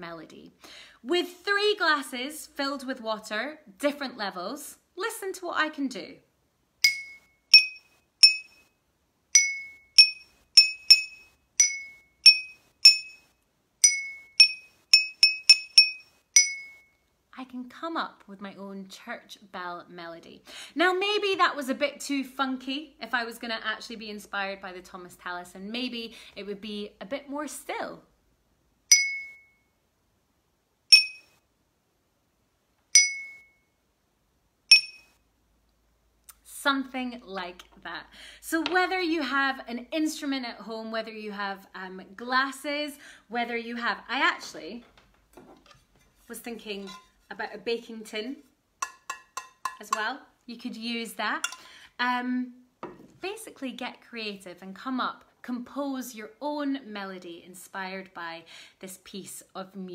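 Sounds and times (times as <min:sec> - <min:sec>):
glasses struck with stick ringing: 0:06.8 - 0:08.6, 0:09.4 - 0:13.2, 0:13.8 - 0:16.8, 0:28.9 - 0:29.5, 0:30.9 - 0:31.3, 0:33.0 - 0:33.5, 0:34.7 - 0:35.1, 0:48.8 - 0:49.9
water glasses struck with stick: 0:33.0 - 0:33.4, 0:48.8 - 0:50.0.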